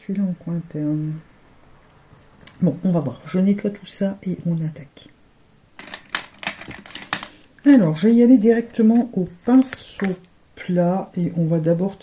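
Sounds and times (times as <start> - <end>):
small items clicking on desk: 5.8 - 7.5.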